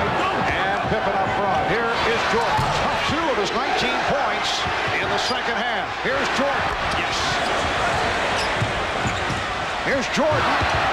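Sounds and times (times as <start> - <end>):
crowd noise in an arena: 0.0 - 10.9.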